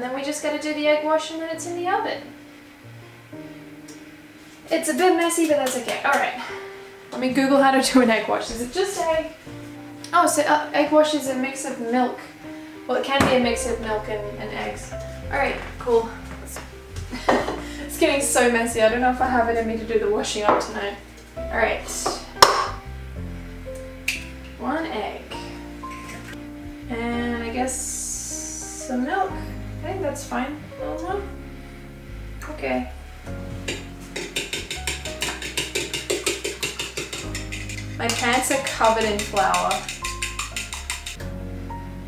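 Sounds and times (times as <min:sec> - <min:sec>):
background music: 0:00.0 - 0:42.0
fork beating eggs in a bowl: 0:33.6 - 0:41.2.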